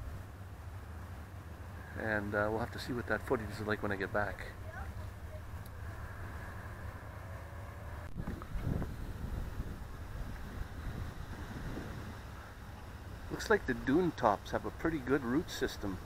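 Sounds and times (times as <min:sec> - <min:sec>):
wind on microphone: 0:07.7 - 0:13.3.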